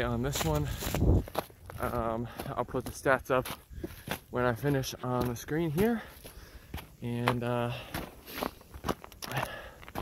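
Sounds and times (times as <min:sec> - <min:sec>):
footsteps crunching on trail: 0:00.0 - 0:10.0.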